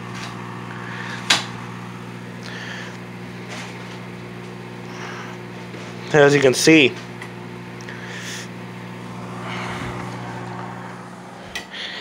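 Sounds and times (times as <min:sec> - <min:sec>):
microwave oven humming: 0:00.0 - 0:12.0.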